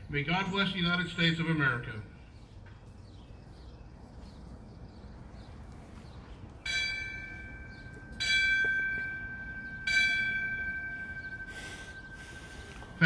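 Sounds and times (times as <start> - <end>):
bell tolling: 6.7 - 13.0.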